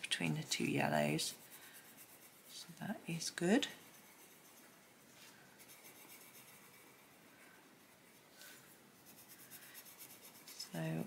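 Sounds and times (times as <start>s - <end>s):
pencil scratching on paper: 0.2s - 8.3s, 8.9s - 11.0s.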